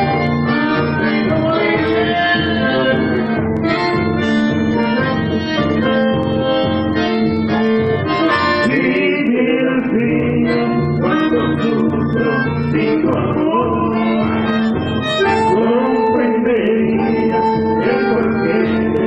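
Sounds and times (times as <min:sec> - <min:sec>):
accordion and bandoneon music: 0:00.0 - 0:19.0
strummed acoustic guitar: 0:00.0 - 0:19.0.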